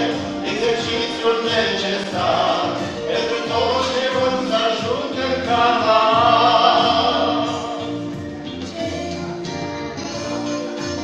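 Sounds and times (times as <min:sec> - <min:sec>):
girls singing a hymn duet: 0:00.0 - 0:07.9
accompaniment with low beat: 0:00.0 - 0:11.0.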